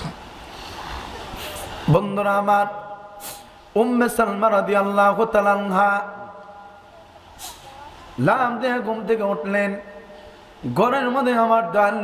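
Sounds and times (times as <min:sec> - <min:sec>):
short hiss: 0:00.5 - 0:01.9, 0:03.2 - 0:03.6, 0:07.3 - 0:07.9
man chanting through loudspeaker: 0:01.9 - 0:06.6, 0:08.2 - 0:12.0.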